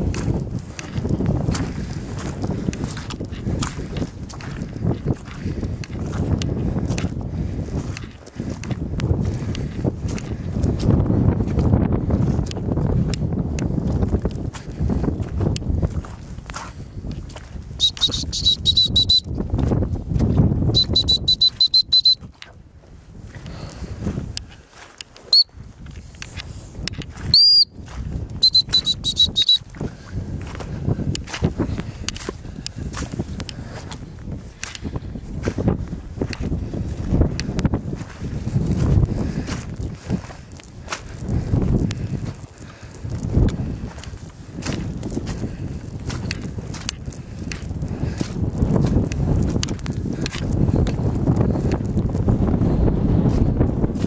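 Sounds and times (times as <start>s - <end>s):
footsteps through grass: 0.0s - 18.6s, 22.1s - 54.0s
wind buffeting microphone: 0.0s - 54.0s
high-pitched whistle blasts: 17.8s - 19.4s, 20.7s - 22.3s, 25.3s - 25.5s, 27.3s - 27.8s, 28.4s - 29.7s.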